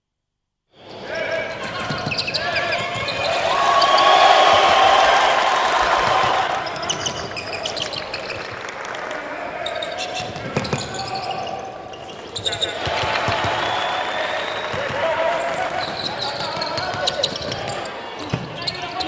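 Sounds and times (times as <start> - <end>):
crowd noise: 0.7 - 19.0
sneakers squeaking on court: 0.8 - 4.2, 6.6 - 8.7, 9.6 - 13.7, 14.6 - 19.0
basketball bouncing: 10.2 - 11.1.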